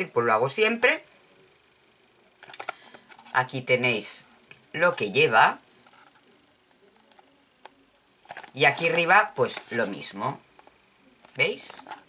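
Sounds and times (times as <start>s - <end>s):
cardboard packet rustling: 8.2s - 9.9s.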